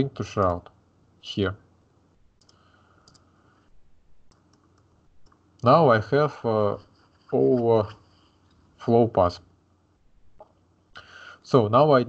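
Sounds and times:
faint computer mouse clicks: 2.4 - 3.3, 4.3 - 5.4.

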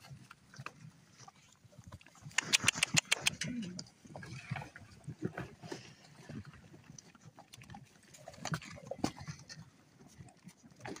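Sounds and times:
crunching and clicking while feeding: 0.2 - 11.0.

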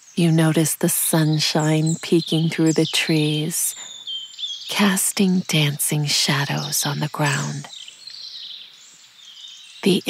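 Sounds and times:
gentle high hiss: 0.0 - 10.0.

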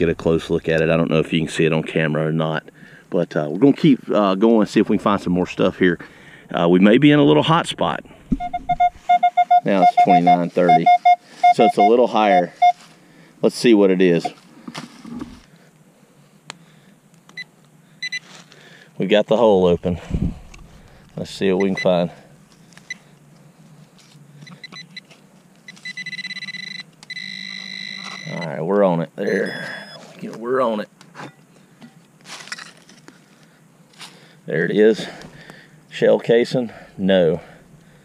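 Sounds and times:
metal detector beeps: 8.3 - 12.8, 14.2 - 14.4, 17.4 - 18.3, 21.6 - 22.0, 24.4 - 25.1, 25.7 - 28.6, 29.2 - 30.1.

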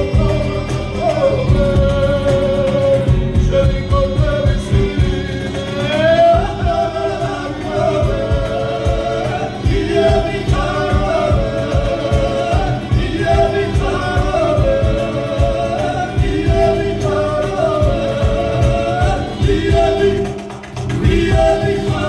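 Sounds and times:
folk ensemble singing in harmony: 0.0 - 22.0.

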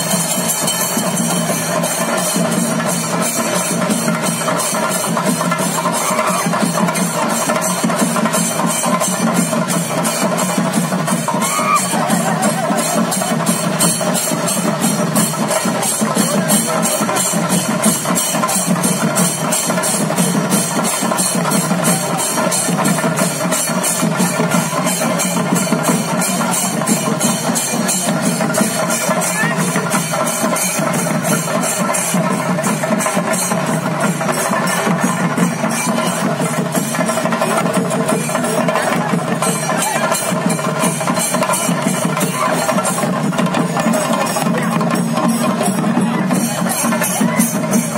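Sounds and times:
fast drumming: 0.0 - 47.9
hand cymbal clashes: 0.0 - 47.9.

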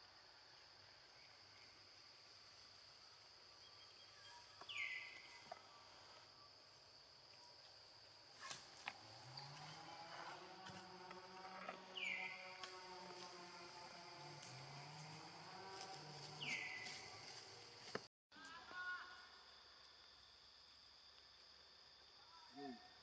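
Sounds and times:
insects droning: 0.0 - 23.0.

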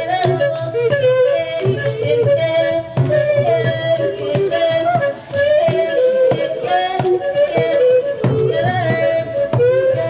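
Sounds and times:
girl singing into microphone: 0.0 - 10.0
wooden hand drum: 0.0 - 10.0.

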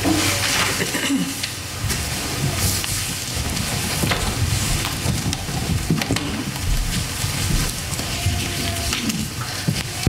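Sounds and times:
rustling and shuffling: 0.0 - 10.0
low thumps: 3.3 - 7.9.

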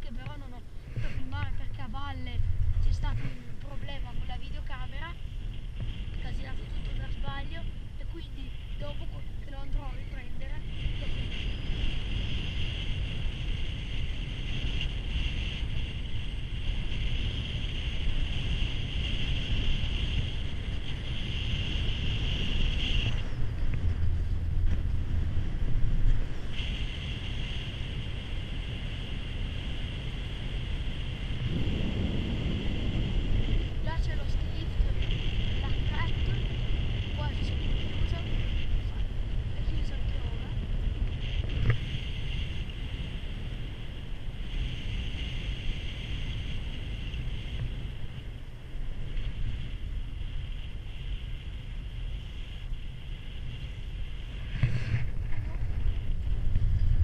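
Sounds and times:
chairlift low rumble: 0.0 - 57.0
high whine: 0.0 - 57.0
wind buffeting microphone: 0.0 - 57.0.

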